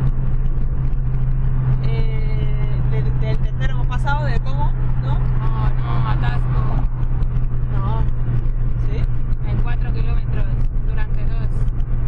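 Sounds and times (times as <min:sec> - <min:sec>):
car engine drone: 0:00.0 - 0:12.0
road noise: 0:00.0 - 0:12.0.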